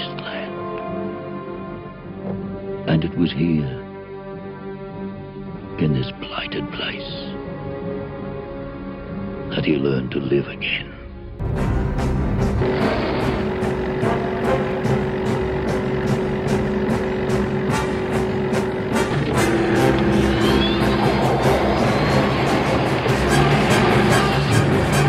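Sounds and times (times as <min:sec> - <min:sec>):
film soundtrack music: 0:00.0 - 0:25.0
car engine running at speed: 0:12.1 - 0:25.0.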